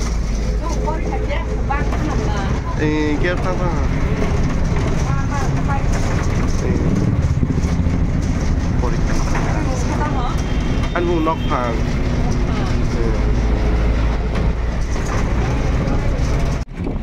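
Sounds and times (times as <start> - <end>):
voices: 0.0 - 16.6
bus engine rumble: 0.0 - 17.0.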